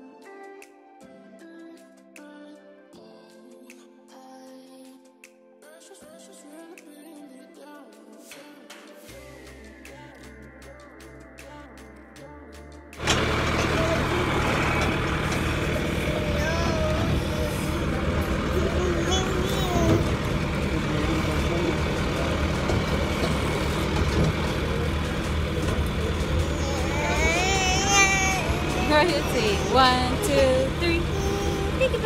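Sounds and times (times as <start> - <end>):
quiet music: 0.0 - 32.0
tractor engine drone: 13.0 - 32.0.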